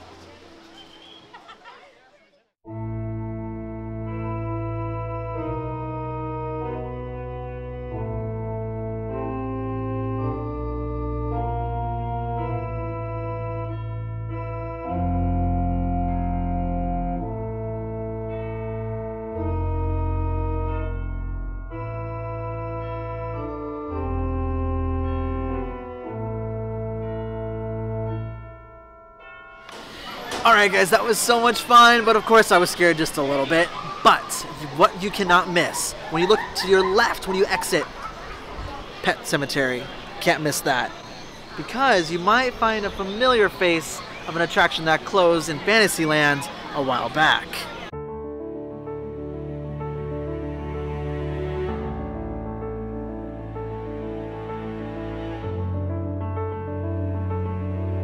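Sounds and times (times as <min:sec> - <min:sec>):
slow organ music: 0:02.7 - 0:38.4, 0:47.9 - 0:58.0.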